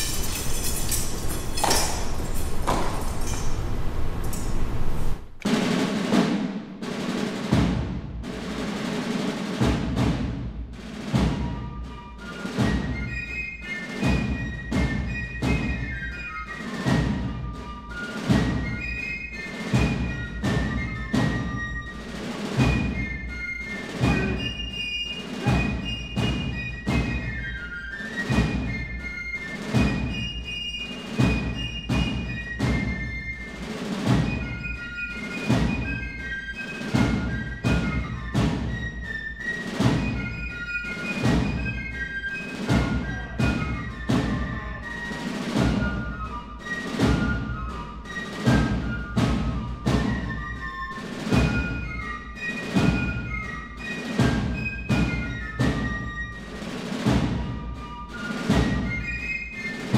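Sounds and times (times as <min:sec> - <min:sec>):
military marching drum beat: 0:05.1 - 0:59.9.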